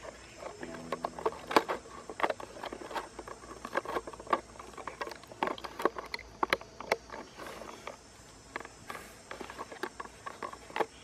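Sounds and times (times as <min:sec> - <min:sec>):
plastic bottle crinkling: 0:00.0 - 0:07.9.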